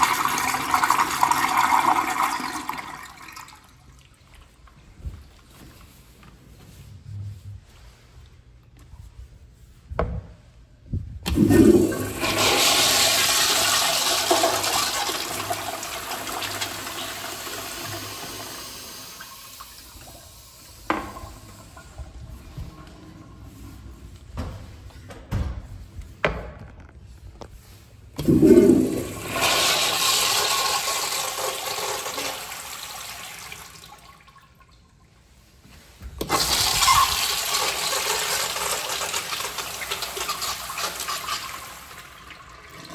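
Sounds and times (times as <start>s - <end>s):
toilet flushing water rush: 0.0s - 4.2s, 11.2s - 22.2s, 28.2s - 34.6s, 36.2s - 42.9s.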